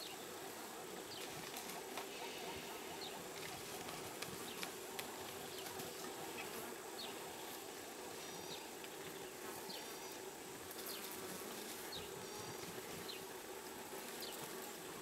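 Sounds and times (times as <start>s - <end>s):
flies buzzing: 0.0s - 15.0s.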